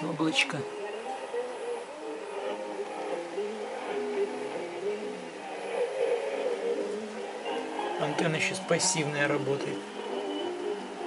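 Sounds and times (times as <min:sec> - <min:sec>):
radio music through speaker: 0:00.0 - 0:11.0
static hiss: 0:00.0 - 0:11.0.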